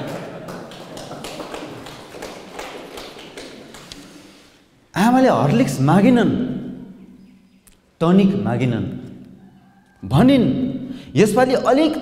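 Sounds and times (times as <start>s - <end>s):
audience clapping: 0.0s - 4.5s.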